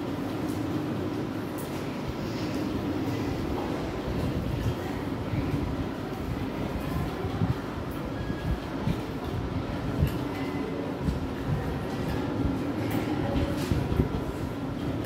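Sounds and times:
low rumbling room noise: 0:00.0 - 0:15.0.

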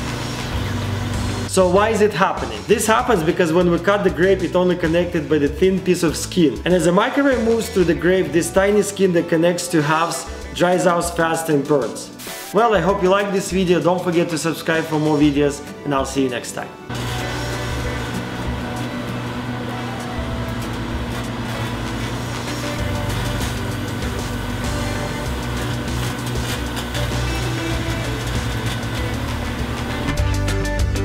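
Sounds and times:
microwave oven humming: 0:00.0 - 0:01.6, 0:16.9 - 0:30.4
background music: 0:00.0 - 0:31.0
guitar music: 0:00.0 - 0:31.0.

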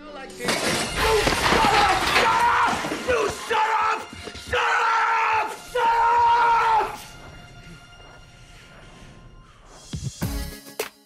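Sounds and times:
glass breaking with a crash: 0:00.4 - 0:03.5
dramatic music: 0:00.4 - 0:10.9.

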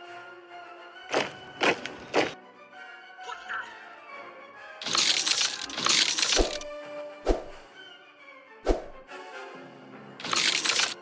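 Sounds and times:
film music: 0:00.0 - 0:11.0.

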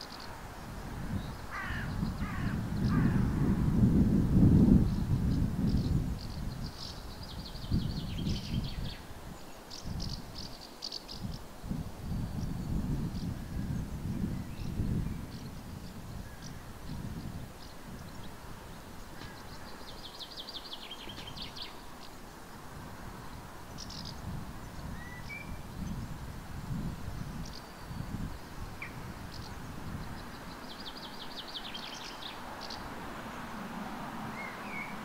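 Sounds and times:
small birds chirping: 0:00.0 - 0:03.2, 0:04.6 - 0:22.6, 0:23.2 - 0:32.9
crow cawing: 0:01.5 - 0:03.3.

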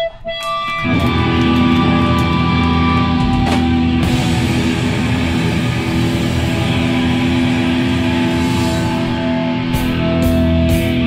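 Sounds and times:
distorted electric guitar: 0:00.0 - 0:11.0
hardcore band playing live: 0:00.4 - 0:11.0.

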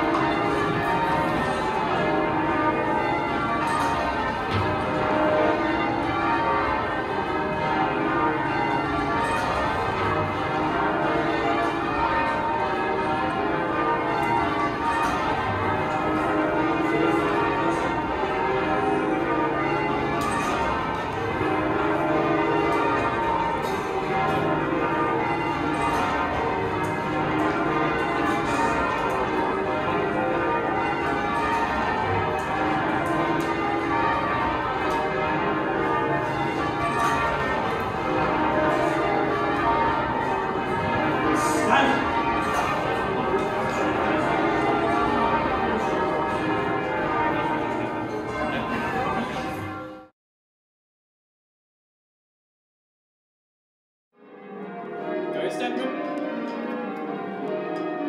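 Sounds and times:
church bells ringing: 0:00.0 - 0:50.1, 0:54.2 - 0:58.0.

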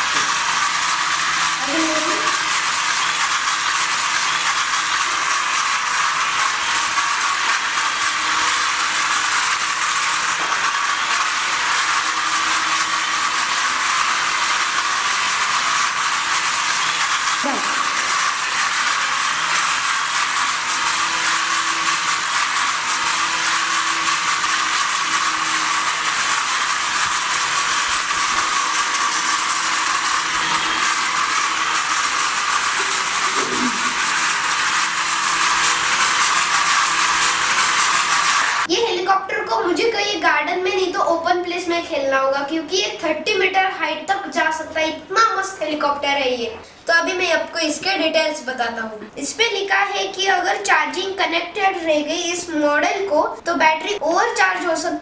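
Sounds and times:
toy helicopter rotors whirring: 0:00.0 - 0:48.5, 0:49.2 - 0:55.0.

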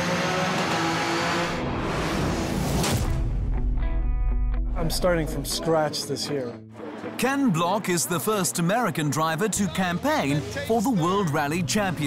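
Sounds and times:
race car engine at high revs: 0:00.0 - 0:02.7.

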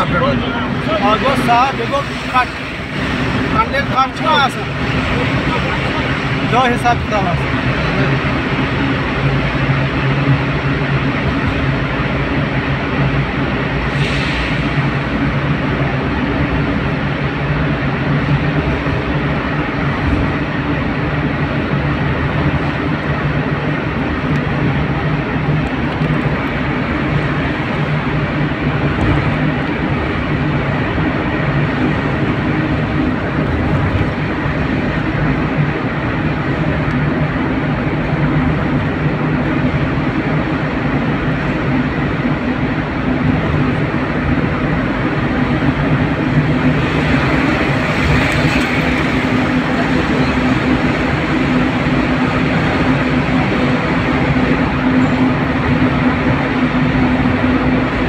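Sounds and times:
low engine hum: 0:00.0 - 0:58.0.

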